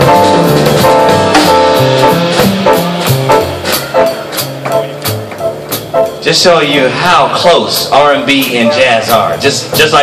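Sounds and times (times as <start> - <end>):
higher pitched instruments: 0.0 - 10.0
upright bass walking line: 0.0 - 10.0.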